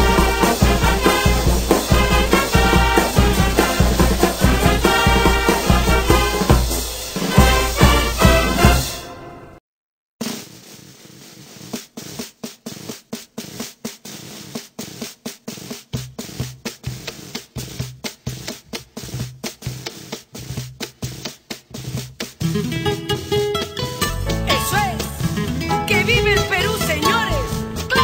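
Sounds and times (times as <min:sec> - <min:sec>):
bass notes: 0:00.0 - 0:08.8, 0:22.5 - 0:28.0
sparse drum beat: 0:00.0 - 0:09.0, 0:11.2 - 0:28.0
background music: 0:00.0 - 0:09.6, 0:22.4 - 0:28.0.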